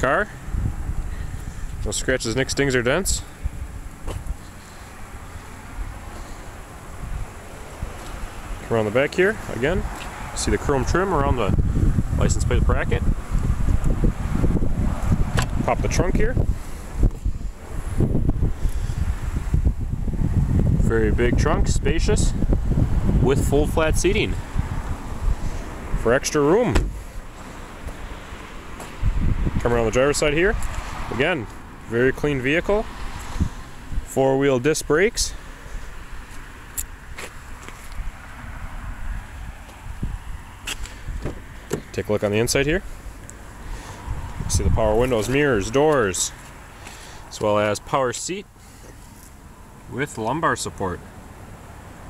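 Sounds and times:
low outdoor rumble: 0:00.0 - 0:52.0
wind buffeting microphone: 0:00.4 - 0:01.9, 0:06.7 - 0:08.6, 0:09.4 - 0:31.8, 0:32.7 - 0:34.1, 0:37.9 - 0:46.2.

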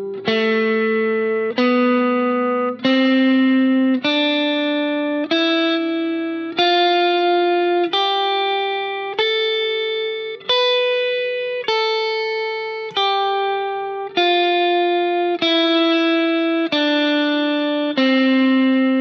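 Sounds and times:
electric guitar playing a scale: 0:00.0 - 0:19.0.

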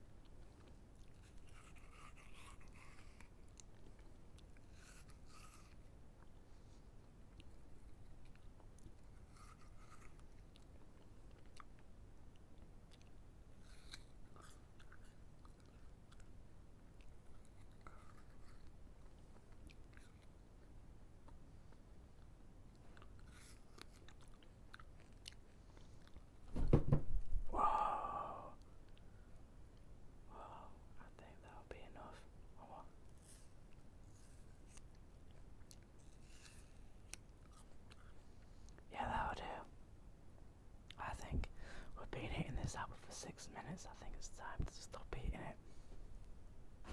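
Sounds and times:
chewing an apple: 0:00.1 - 0:26.4, 0:32.8 - 0:38.9
breathy mouth noises: 0:27.5 - 0:29.2.

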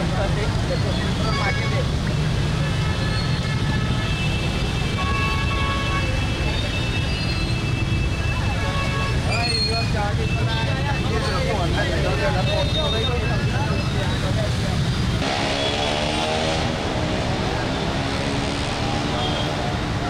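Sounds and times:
people talking: 0:00.0 - 0:02.2, 0:09.3 - 0:15.0
traffic engines running: 0:00.0 - 0:20.0.

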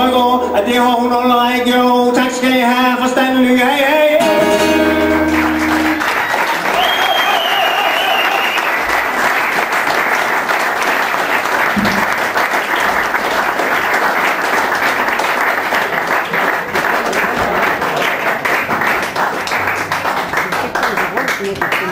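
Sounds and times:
person singing: 0:00.0 - 0:06.0
acoustic guitar chord: 0:04.2 - 0:06.2
audience applause: 0:04.2 - 0:21.9.

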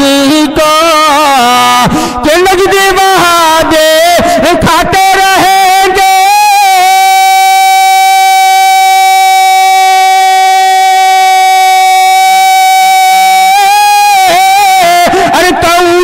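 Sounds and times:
man singing a long held note: 0:00.0 - 0:16.0.

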